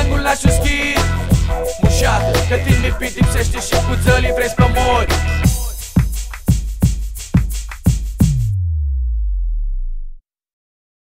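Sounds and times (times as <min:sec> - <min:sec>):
deep electronic bass tone: 0:00.0 - 0:05.6, 0:08.2 - 0:10.2.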